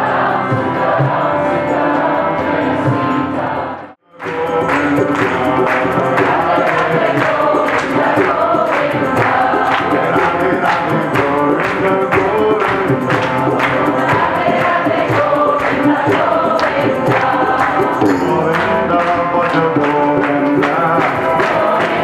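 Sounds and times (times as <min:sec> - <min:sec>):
group chanting: 0:00.0 - 0:22.0
harmonium: 0:00.0 - 0:22.0
tabla: 0:04.2 - 0:22.0.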